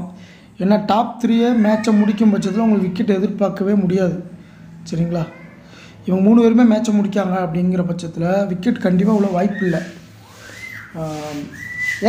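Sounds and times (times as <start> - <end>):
high whistled notes: 9.5 - 12.0.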